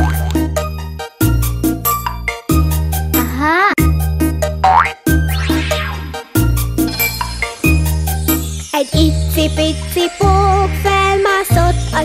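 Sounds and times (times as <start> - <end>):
upbeat children's song music: 0.0 - 12.0
whistle-like cartoon sound effects: 5.3 - 6.1.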